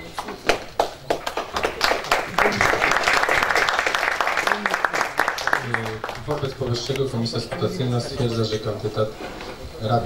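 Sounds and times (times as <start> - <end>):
crowd applause: 0.4 - 8.4.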